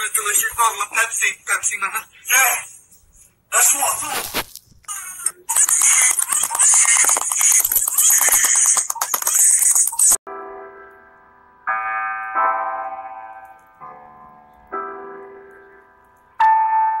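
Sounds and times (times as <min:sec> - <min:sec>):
harsh noisy sound: 0:05.5 - 0:10.2
slow piano chords: 0:10.3 - 0:17.0.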